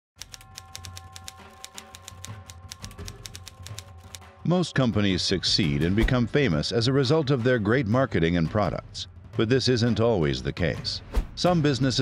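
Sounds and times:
typewriter key clacks: 0:00.2 - 0:04.2
low droning music: 0:00.2 - 0:12.0.

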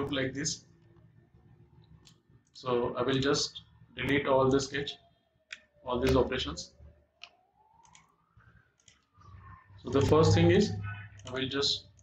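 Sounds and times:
computer mouse clicks: 0:01.8 - 0:02.6, 0:07.2 - 0:10.4, 0:11.1 - 0:12.0.

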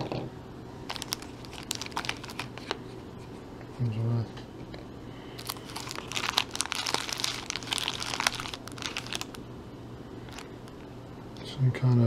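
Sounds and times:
plastic bags crinkling: 0:00.9 - 0:02.8, 0:05.4 - 0:09.4, 0:10.3 - 0:10.8.

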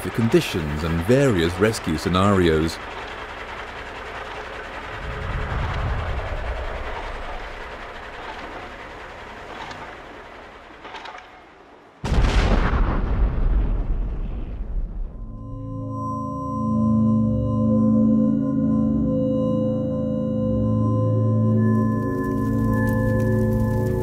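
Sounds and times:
heavy mining machinery rumble: 0:00.0 - 0:15.0, 0:21.6 - 0:24.0
loud explosion boom: 0:12.0 - 0:15.4.

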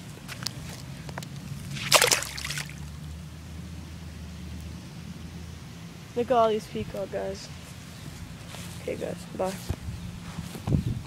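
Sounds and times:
fish splashing into water: 0:01.7 - 0:03.0.

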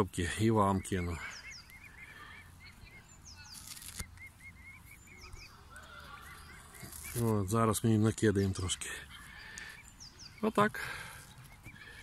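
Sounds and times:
cygnets peeping: 0:00.0 - 0:12.0.

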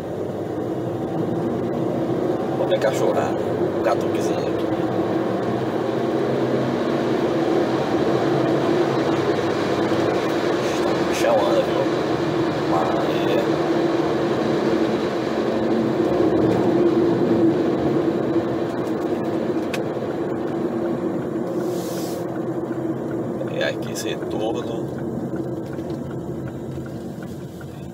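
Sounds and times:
car engine hum: 0:00.0 - 0:27.9
road and tyre noise: 0:00.0 - 0:27.9
brief hiss: 0:21.6 - 0:22.2.

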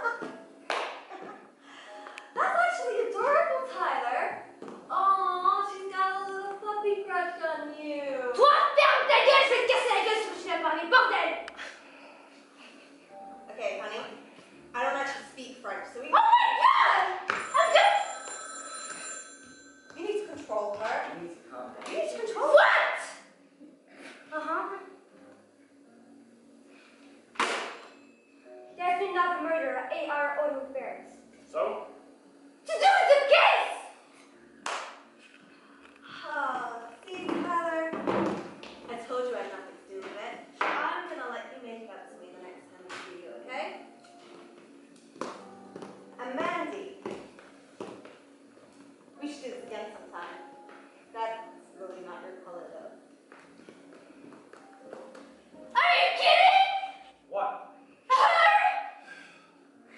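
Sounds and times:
telephone bell ringing: 0:17.4 - 0:20.0.

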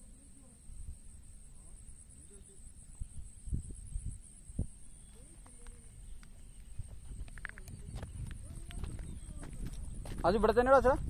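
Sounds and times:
footsteps on grass and rock: 0:05.4 - 0:11.0.

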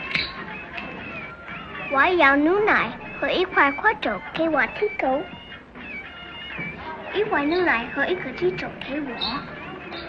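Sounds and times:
girl speaking: 0:01.9 - 0:05.3, 0:07.2 - 0:09.5.

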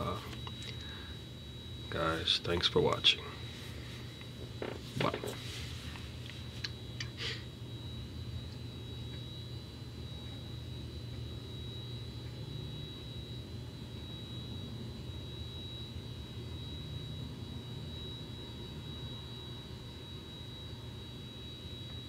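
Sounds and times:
high-pitched whine: 0:00.0 - 0:22.0
low background hum: 0:00.0 - 0:22.0.

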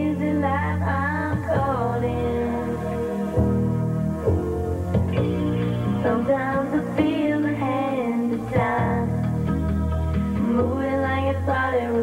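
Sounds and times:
woman singing into a microphone: 0:00.0 - 0:03.1, 0:05.8 - 0:09.5, 0:10.4 - 0:12.0
instrumental accompaniment: 0:00.0 - 0:12.0.

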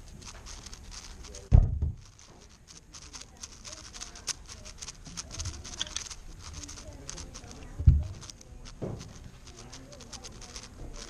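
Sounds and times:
puzzle cube plastic clicks: 0:00.0 - 0:11.0
dull low thump: 0:01.5 - 0:02.2, 0:07.8 - 0:08.2.

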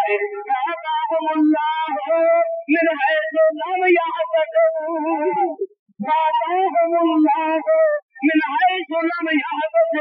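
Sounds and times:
person chanting melodically: 0:00.0 - 0:10.0.

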